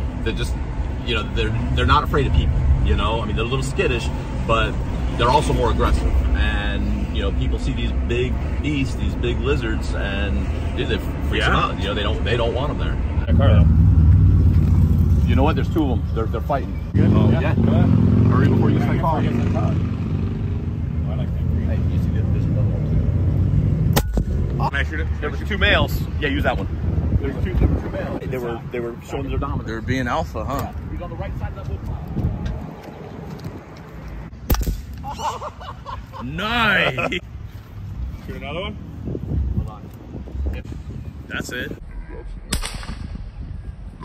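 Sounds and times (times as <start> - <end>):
air rifle shot: 42.5 - 43.4
gunshot: 42.5 - 43.4.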